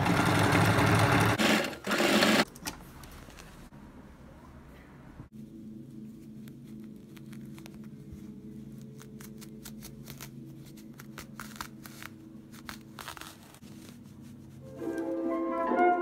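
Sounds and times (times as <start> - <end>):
fabric rustling and scratching: 5.8 - 14.7.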